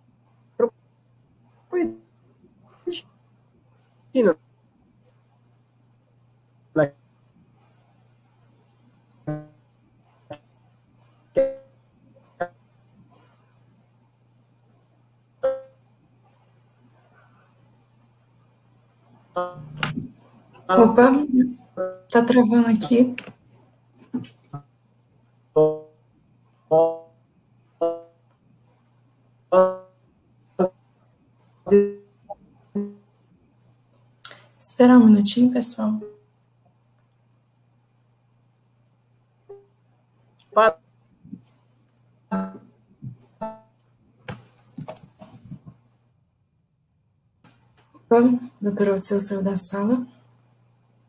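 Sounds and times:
faint steady hum: 0:00.0 - 0:51.0
keyboard-like notes: 0:19.4 - 0:23.2, 0:26.7 - 0:27.1, 0:29.5 - 0:29.9, 0:42.3 - 0:42.7, 0:43.4 - 0:43.7
clipped voice fragments: 0:19.6 - 0:20.1, 0:20.7 - 0:21.5, 0:22.1 - 0:23.3.

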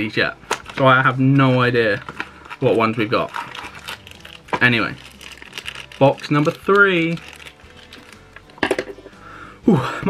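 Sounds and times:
quiet background music: 0:00.0 - 0:10.0
packaging clicks and rustle: 0:00.5 - 0:01.1, 0:01.8 - 0:08.6.

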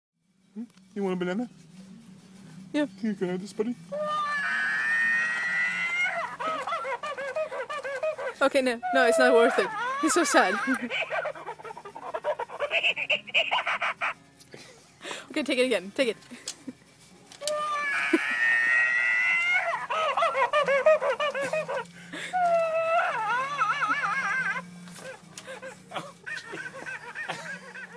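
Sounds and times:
toy monkey screech: 0:04.0 - 0:07.8, 0:08.8 - 0:14.2
toy monkey hooting chatter: 0:04.0 - 0:14.2, 0:17.5 - 0:21.8, 0:22.6 - 0:24.6.

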